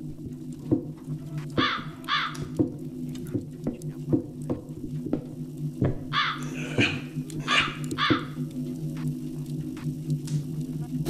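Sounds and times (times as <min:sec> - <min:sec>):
steady low hum: 0:00.0 - 0:11.0
footsteps on wooden floor: 0:00.1 - 0:08.4
crow cawing: 0:01.6 - 0:02.6, 0:06.1 - 0:08.5.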